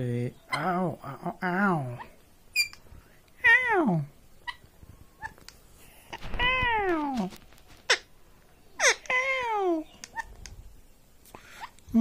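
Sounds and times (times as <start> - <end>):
parakeet chirping: 1.8 - 2.9, 4.4 - 5.5, 7.9 - 10.5
parakeet mimicking a cry of pain: 8.8 - 10.3.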